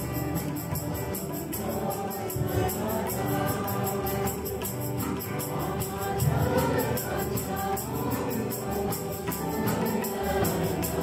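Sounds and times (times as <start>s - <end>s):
congregation singing a hymn: 0.0s - 11.0s
tambourine beat: 0.0s - 11.0s.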